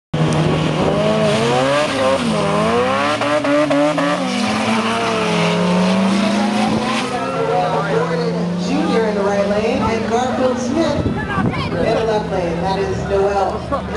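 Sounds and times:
car engines revving: 0.2s - 13.9s
cars accelerating hard: 0.2s - 13.9s.

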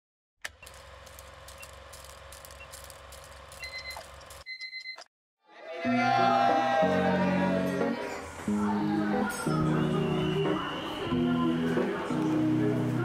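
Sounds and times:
short high beeps: 3.6s - 5.1s
music: 5.8s - 13.0s.

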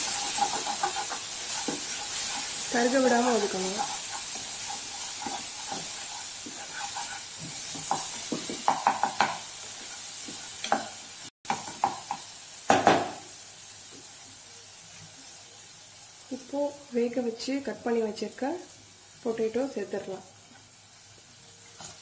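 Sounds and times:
spatula scraping a pan: 0.0s - 11.0s
masala sizzling in oil: 0.0s - 22.0s.

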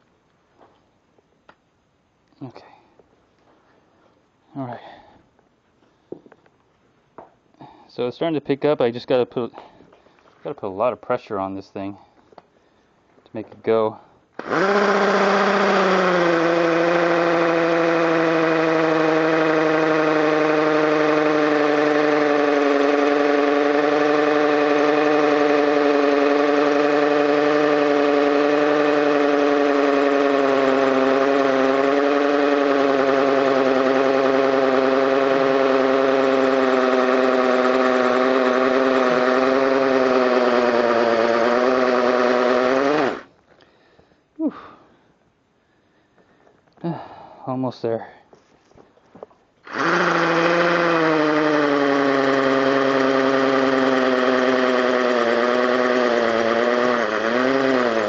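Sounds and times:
hammer drill drilling masonry: 14.4s - 43.3s, 49.2s - 58.0s.

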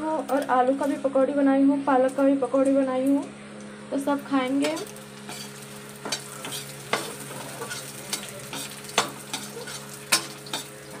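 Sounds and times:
onions sizzling in oil: 4.0s - 11.0s
metal spatula scraping a pan: 4.6s - 11.0s.

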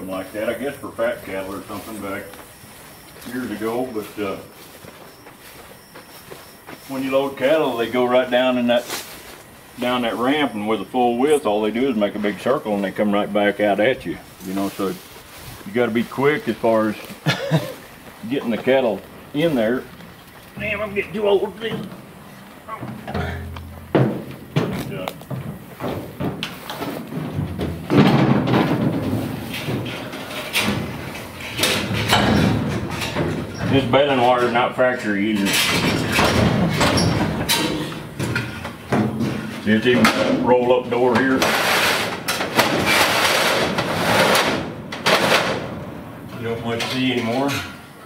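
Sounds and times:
footsteps on wooden floor: 1.2s - 7.0s, 17.0s - 31.5s
hollow knocks in metal trailer: 20.6s - 34.7s, 35.4s - 47.8s
metal roll-up door rattling: 26.2s - 47.8s.

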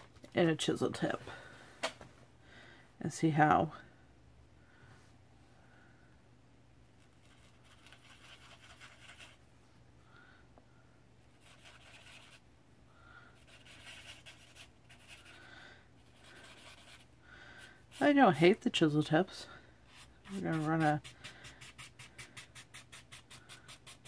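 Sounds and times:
marker scratching on paper: 11.4s - 12.4s, 13.4s - 15.4s, 16.0s - 17.1s, 19.9s - 24.0s.

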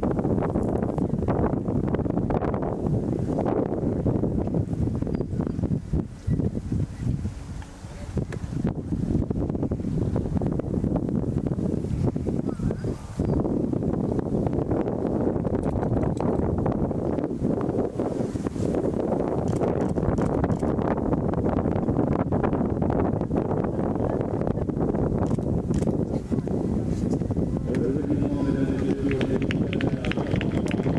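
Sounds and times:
wind buffeting microphone: 0.0s - 30.9s.

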